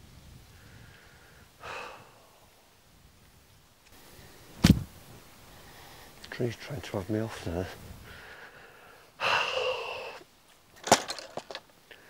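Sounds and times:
breathy sigh: 0.6s - 2.5s, 8.0s - 10.2s
golf clubs clacking: 10.8s - 11.7s.

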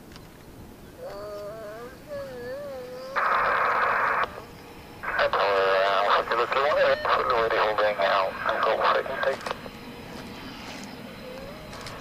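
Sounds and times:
radio static hiss: 3.1s - 12.0s
voice over radio: 5.0s - 9.6s.

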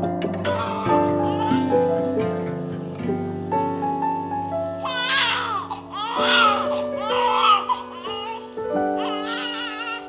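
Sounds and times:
background music with held notes: 0.0s - 10.0s
newborn baby crying: 0.4s - 1.9s, 4.8s - 10.0s.

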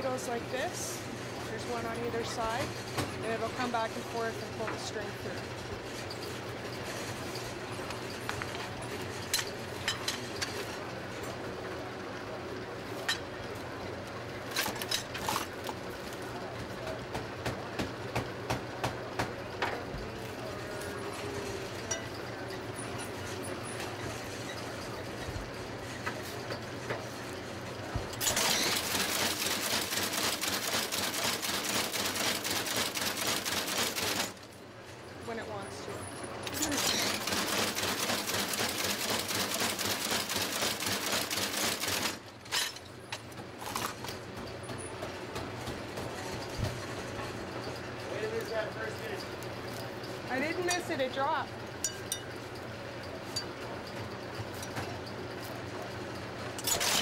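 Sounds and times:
stitching machine rapid clatter: 28.2s - 34.4s, 36.5s - 42.2s, 56.6s - 57.0s.

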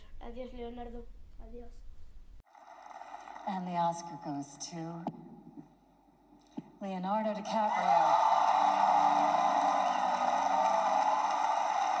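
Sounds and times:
audience applauding and cheering: 2.5s - 3.7s, 7.5s - 12.0s.

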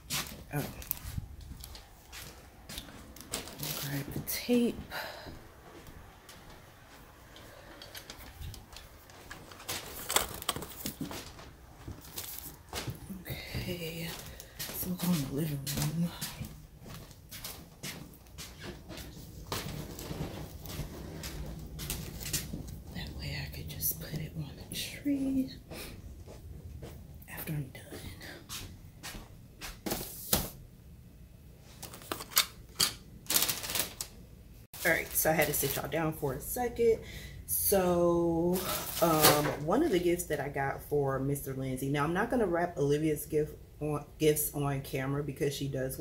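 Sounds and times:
phone being handled: 7.9s - 12.6s.

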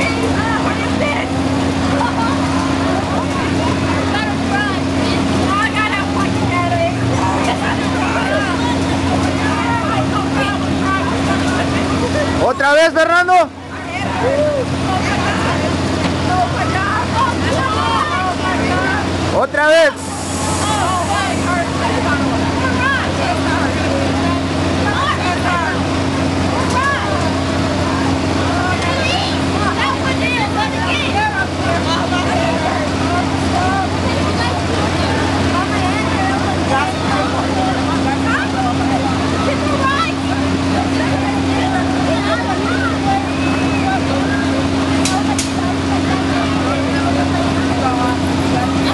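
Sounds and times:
low machine hum: 0.0s - 48.9s
riders screaming and shouting: 13.8s - 15.7s.

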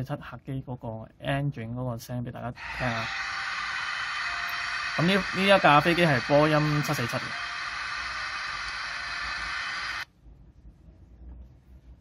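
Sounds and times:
jet engines rushing through small speaker: 2.6s - 10.0s.

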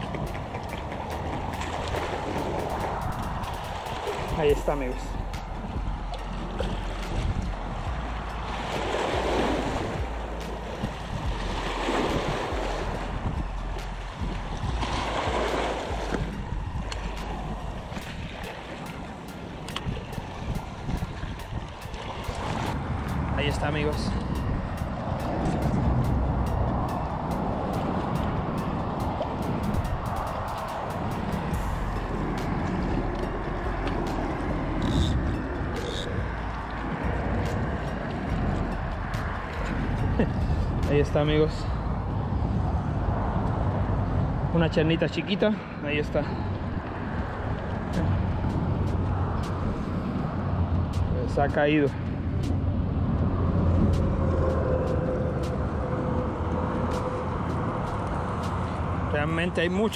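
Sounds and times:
waves washing against rocks: 0.0s - 41.4s
wind buffeting microphone: 0.0s - 59.9s.

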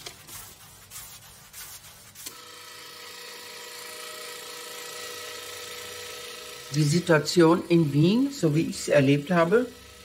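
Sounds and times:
steady mechanical whir: 2.3s - 10.0s.

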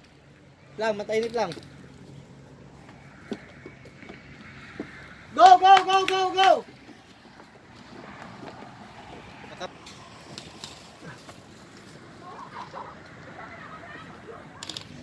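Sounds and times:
person shouting: 5.3s - 6.7s.

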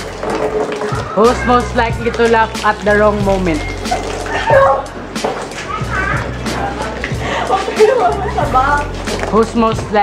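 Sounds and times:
laughter: 5.7s - 8.6s.

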